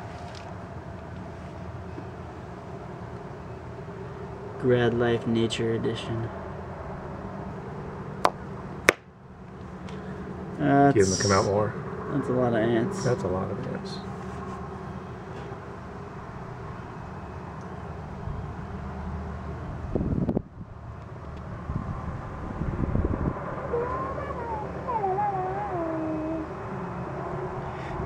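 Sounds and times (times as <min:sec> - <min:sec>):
low outdoor rumble: 0:00.0 - 0:28.0
wavering rising and falling cries: 0:10.9 - 0:11.7, 0:23.4 - 0:28.0.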